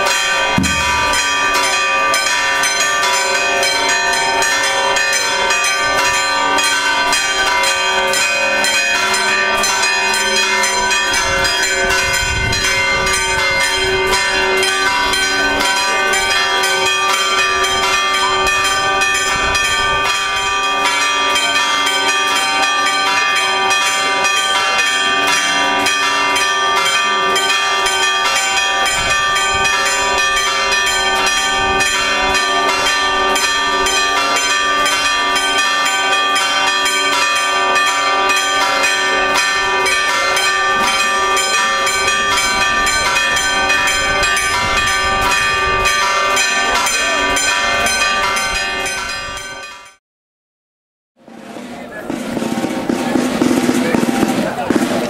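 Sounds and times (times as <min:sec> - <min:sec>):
church bells pealing: 0:00.0 - 0:50.0.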